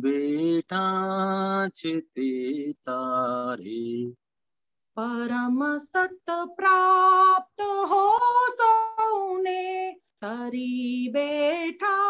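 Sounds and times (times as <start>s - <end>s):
woman singing unaccompanied: 5.0s - 12.0s.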